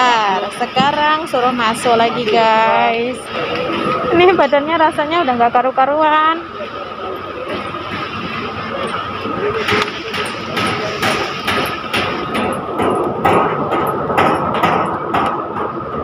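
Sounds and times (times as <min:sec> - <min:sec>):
crowd chatter echoing: 0:00.0 - 0:12.8
steady high hum: 0:00.0 - 0:16.0.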